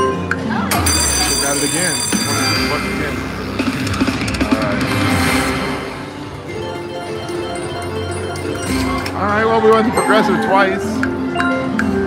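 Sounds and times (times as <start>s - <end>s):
bright ringing chime: 0.7s - 3.0s
jingling slot machine music: 0.7s - 3.7s, 6.3s - 12.0s.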